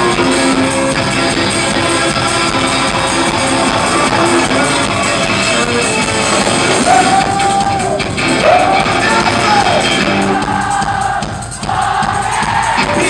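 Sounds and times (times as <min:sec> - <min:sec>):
crowd noise: 0:00.0 - 0:13.0
rock band playing guitar: 0:00.0 - 0:13.0
man singing long notes: 0:01.7 - 0:10.0.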